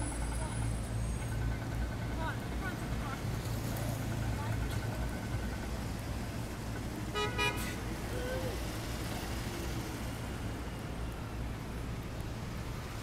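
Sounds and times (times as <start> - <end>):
city street traffic: 0.0 - 13.0
car horn toot: 7.2 - 7.7.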